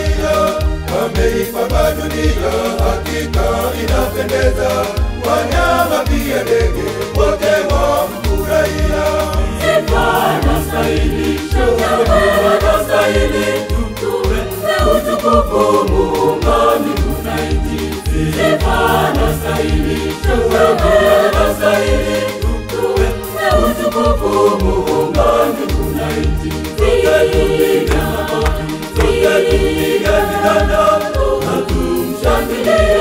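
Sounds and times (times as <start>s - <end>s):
backing track bass beat: 0.0s - 33.0s
church choir singing gospel: 0.0s - 33.0s.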